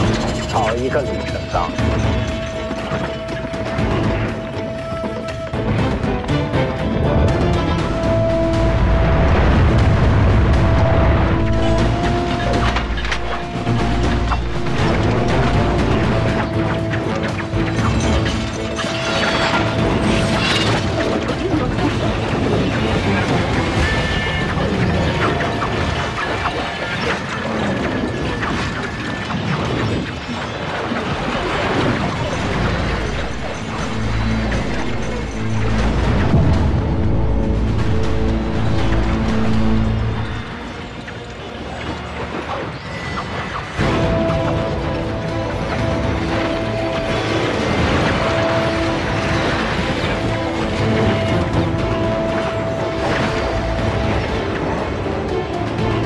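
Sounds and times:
dramatic film score: 0.0 - 56.0
deep booms: 5.6 - 18.6.

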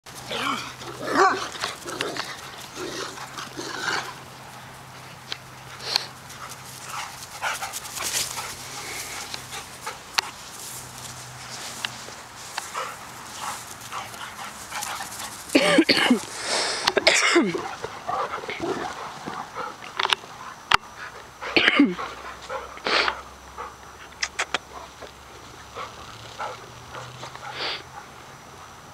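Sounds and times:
dogs growling: 0.1 - 5.0, 12.6 - 28.6
dogs play-fighting cries: 0.1 - 10.4, 12.6 - 28.2.

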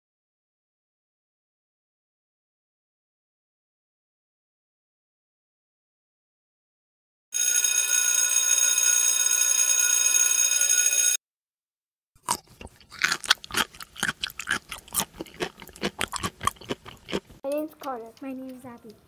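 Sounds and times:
steady ringing tone: 7.4 - 11.2
kittens crunching dry food: 12.3 - 19.0.

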